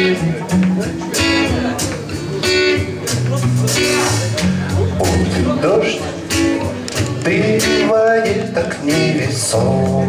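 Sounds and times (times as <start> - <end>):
low electric guitar line: 0.0 - 10.0
strummed acoustic guitar: 0.0 - 10.0.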